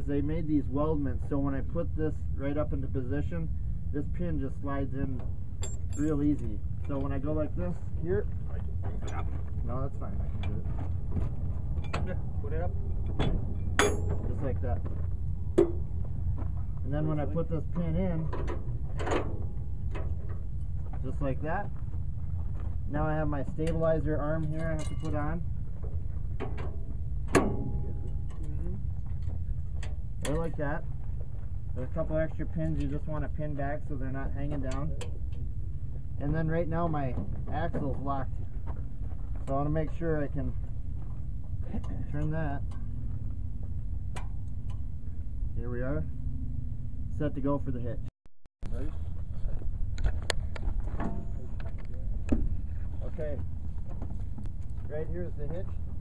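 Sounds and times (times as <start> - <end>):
steady low rumble: 0.0 - 56.0
metallic clank ringing: 5.2 - 7.1, 11.8 - 14.5, 24.4 - 25.3, 26.4 - 28.6.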